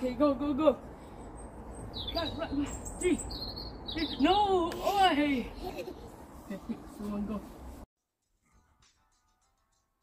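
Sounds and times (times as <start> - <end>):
small birds chirping: 1.0 - 4.9.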